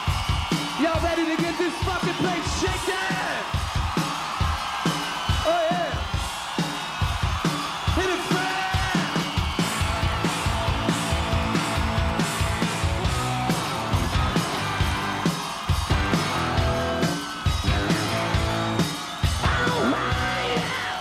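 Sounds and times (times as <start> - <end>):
drum beat: 0.0 - 21.0
singer yelling: 0.8 - 3.6, 7.7 - 9.3, 19.3 - 21.0.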